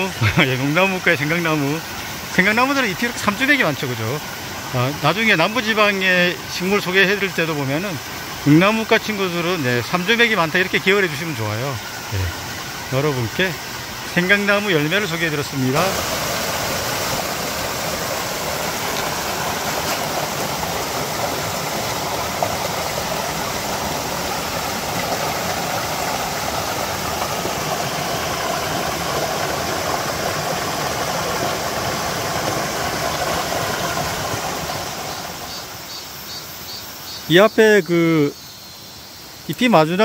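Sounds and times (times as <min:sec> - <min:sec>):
stream rushing over rocks: 0:00.0 - 0:36.2.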